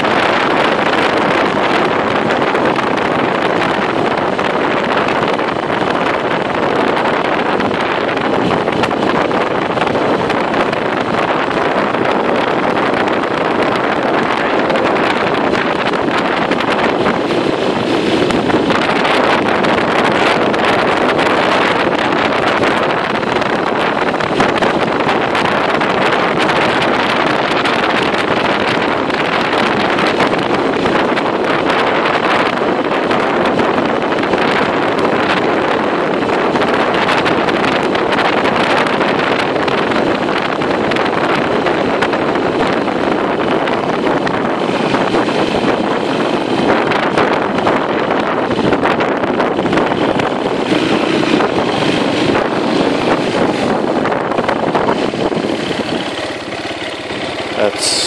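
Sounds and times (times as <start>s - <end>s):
wind noise on microphone: 0.0s - 58.0s
small motorcycle engine running: 36.5s - 58.0s.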